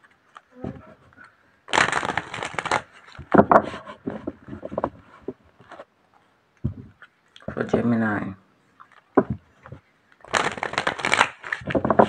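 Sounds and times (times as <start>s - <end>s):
cards rustling: 0.0s - 5.9s, 8.8s - 12.0s.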